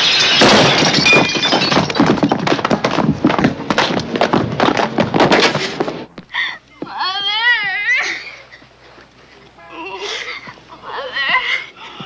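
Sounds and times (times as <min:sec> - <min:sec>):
sobbing: 0:06.3 - 0:08.7, 0:09.6 - 0:12.0
high-pitched crying wail: 0:06.4 - 0:08.4.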